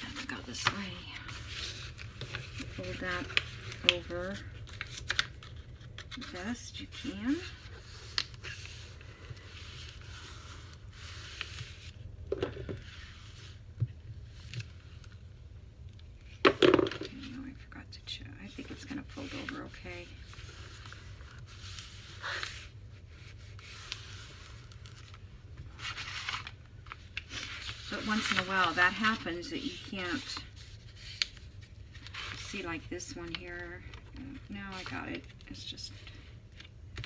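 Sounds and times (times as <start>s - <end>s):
paper rustling and creasing: 0.0s - 15.2s, 18.4s - 37.0s.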